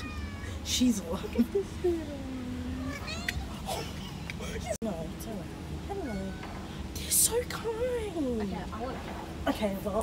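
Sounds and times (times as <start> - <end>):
cat meowing: 0.0 - 0.5, 2.8 - 3.4
girls laughing and talking: 0.9 - 2.6.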